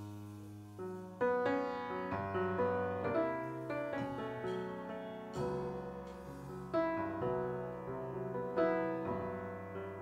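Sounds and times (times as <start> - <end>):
grand piano chords: 0.0 - 10.0.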